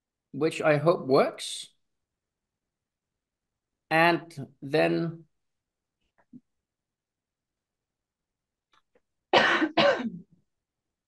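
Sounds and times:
person coughing: 9.4s - 10.3s.

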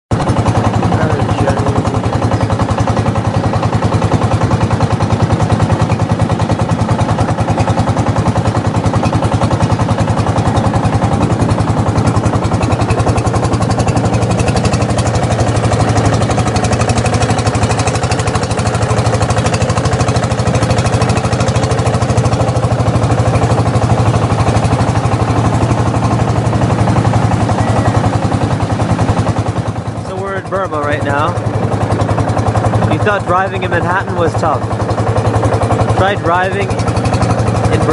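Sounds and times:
motorboat engine drone: 0.1s - 37.9s.

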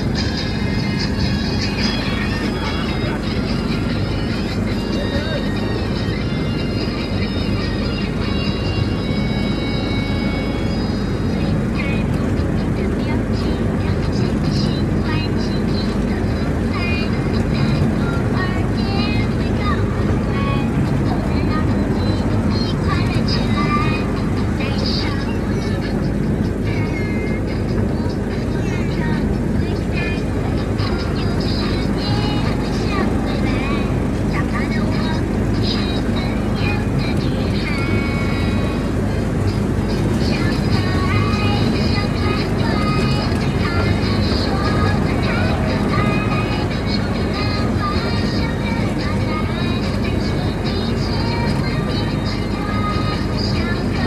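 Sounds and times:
music: 0.0s - 54.0s
steady low rumble: 0.0s - 54.0s
voices: 0.0s - 54.0s.

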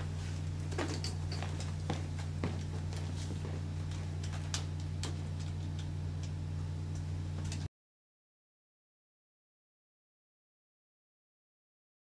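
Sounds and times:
low electrical hum: 0.0s - 7.7s.

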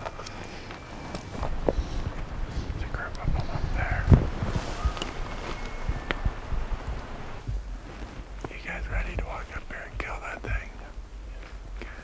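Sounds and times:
footsteps: 0.0s - 12.0s
person whispering: 2.7s - 4.2s, 8.5s - 11.0s, 11.8s - 12.0s.

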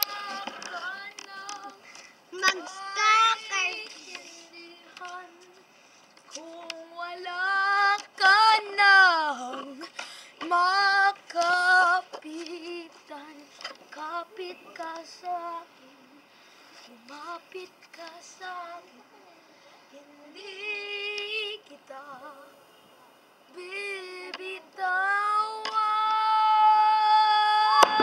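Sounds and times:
child singing: 0.0s - 5.6s, 6.3s - 16.2s, 16.9s - 19.3s, 23.5s - 28.0s.

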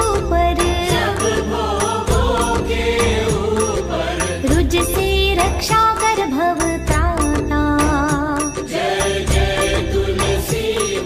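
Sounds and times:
percussion beat: 0.0s - 11.0s.

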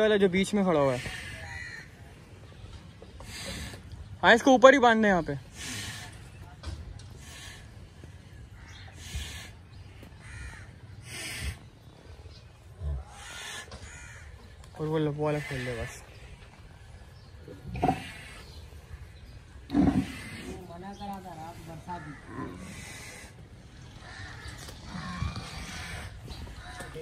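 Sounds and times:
bird calling: 5.4s - 27.0s.

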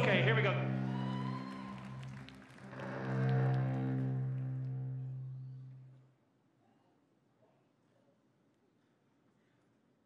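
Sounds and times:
bowed cellos playing slow music: 2.0s - 6.0s.

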